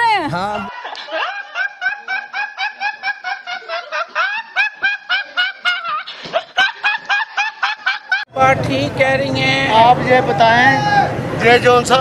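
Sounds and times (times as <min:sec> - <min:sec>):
boy laughing hysterically: 0:00.7 - 0:08.3.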